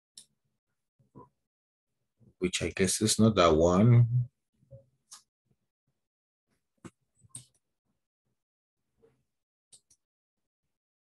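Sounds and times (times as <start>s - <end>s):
computer mouse clicks: 6.8s - 7.6s, 9.7s - 10.0s.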